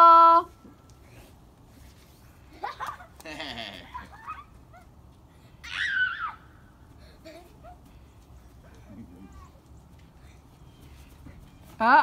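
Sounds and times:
small child squealing: 5.6 - 6.5.

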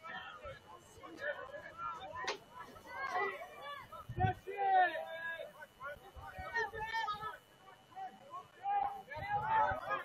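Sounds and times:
distant shouted voices: 0.0 - 10.0
faint background chatter: 0.0 - 10.0.

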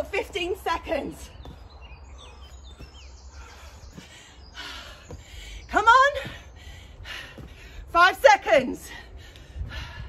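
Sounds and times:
faint birdsong: 0.0 - 10.0.

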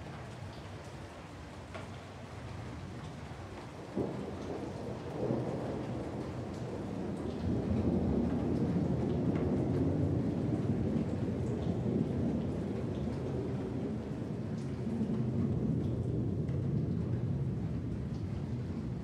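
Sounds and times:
steady rain: 0.0 - 19.0
low rolling thunder rumble: 2.7 - 19.0.

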